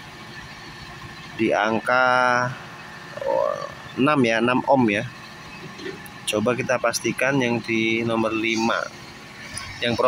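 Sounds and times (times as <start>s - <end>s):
faint wavering voice-like sound: 3.2s - 3.8s.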